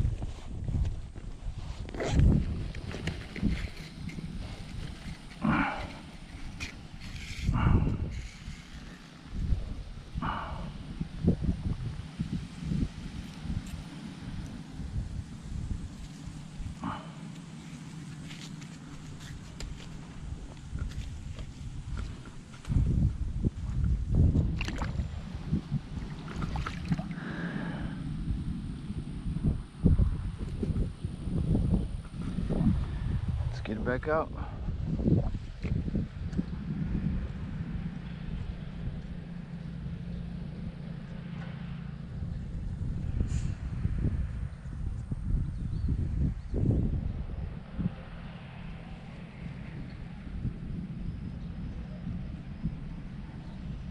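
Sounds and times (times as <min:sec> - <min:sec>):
wind buffeting microphone: 0:00.0 - 0:53.9.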